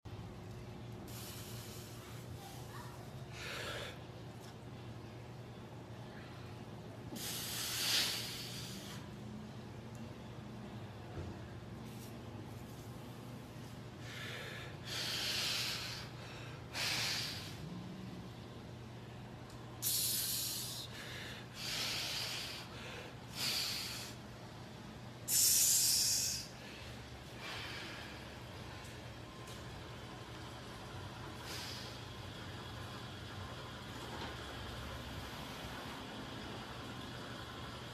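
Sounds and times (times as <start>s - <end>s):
steady low hum: 0.1s - 37.9s
man breathing hard: 3.3s - 4.1s, 7.1s - 9.2s, 14.0s - 17.7s, 19.8s - 24.4s, 25.3s - 28.9s, 31.4s - 32.3s.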